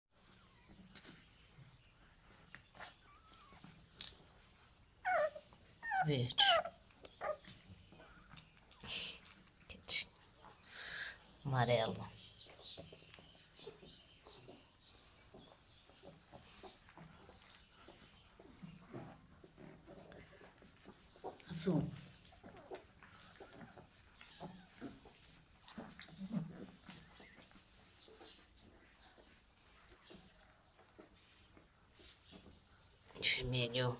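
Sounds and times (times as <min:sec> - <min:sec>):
puppies whimpering: 0:00.2 - 0:09.4, 0:12.2 - 0:33.5
high-pitched puppy squeal: 0:02.8 - 0:03.8, 0:05.0 - 0:07.6.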